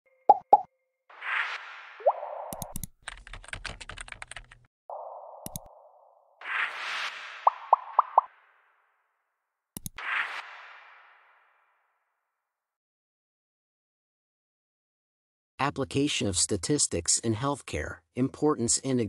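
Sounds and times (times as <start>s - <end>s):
short rising blip: 0.3s - 2.8s, 4.9s - 8.4s
interface pops: 2.0s - 2.9s, 4.9s - 6.1s, 7.3s - 8.3s
mouse clicks: 2.5s - 2.9s, 5.4s - 5.7s, 9.8s - 10.0s
keyboard typing clicks: 2.5s - 4.6s, 5.4s - 5.7s, 9.8s - 10.0s.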